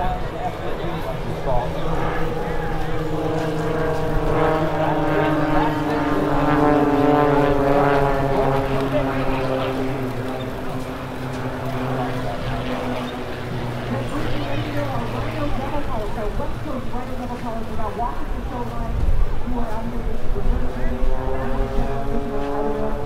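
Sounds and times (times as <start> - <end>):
propeller aircraft flying past: 0.0 - 23.0.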